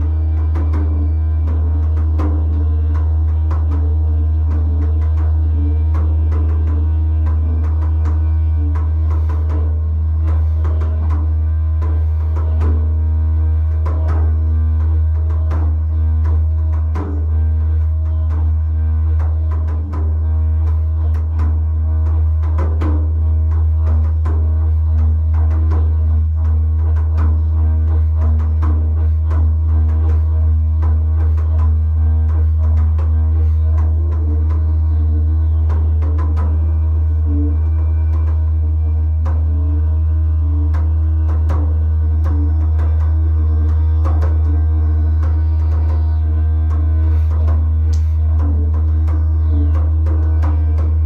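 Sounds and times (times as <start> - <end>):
didgeridoo drone: 0.0 - 51.0
hand drum strikes: 0.0 - 51.0.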